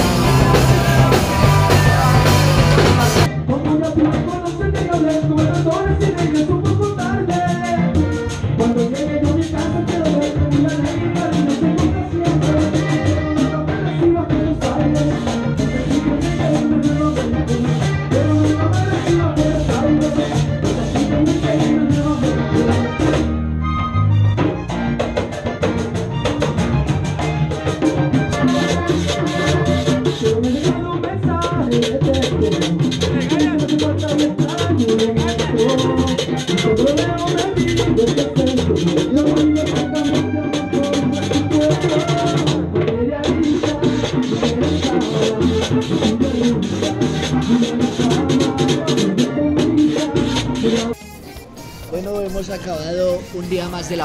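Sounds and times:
scraper rhythm: 0.0s - 3.3s, 50.6s - 54.0s
accordion melody: 0.0s - 3.6s, 5.5s - 54.0s
drums: 0.0s - 23.5s, 24.3s - 54.0s
live band playing: 0.0s - 54.0s.

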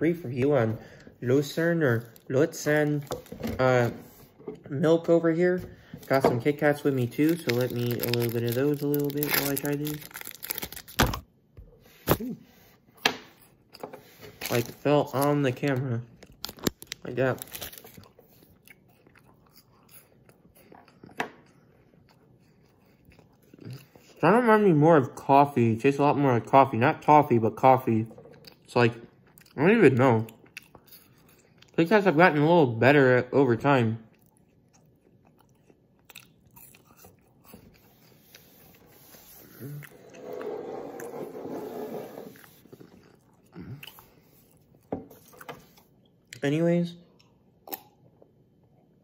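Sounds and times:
chewing crunchy wafer bar: 6.8s - 11.0s, 13.6s - 24.2s, 34.1s - 38.7s.

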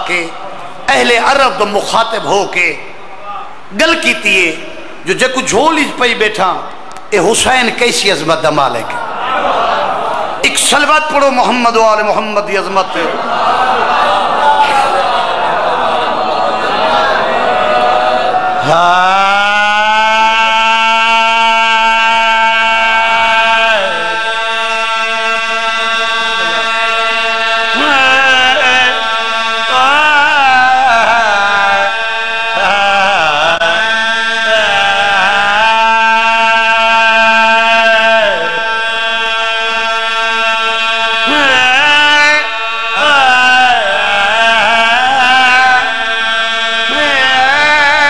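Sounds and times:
man chanting through a microphone: 0.0s - 9.1s, 18.2s - 48.0s.

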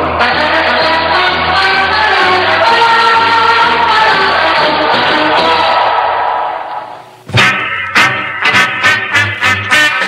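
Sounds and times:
upbeat track with strong hits: 2.5s - 9.4s.

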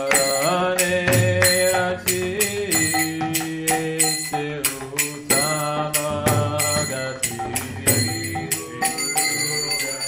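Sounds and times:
small hand cymbals ringing: 0.0s - 10.0s
voices singing devotional chant: 0.0s - 10.0s.

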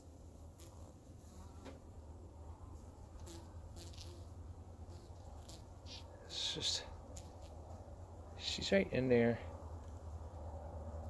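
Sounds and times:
honeybees humming: 0.0s - 8.7s.

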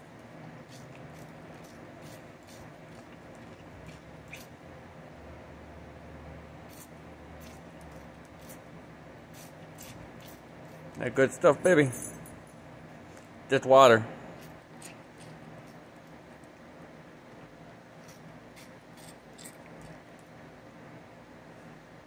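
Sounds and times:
dog licking and lapping water: 0.6s - 4.5s.

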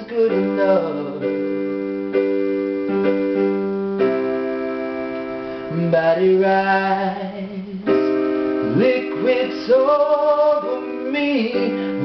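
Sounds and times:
man singing: 0.0s - 1.6s, 5.7s - 12.0s
electronic keyboard playing chords: 0.0s - 12.0s.

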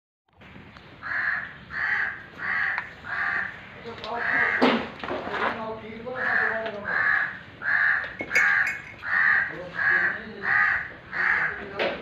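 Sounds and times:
bird harsh calls: 0.8s - 5.0s, 6.0s - 11.6s.

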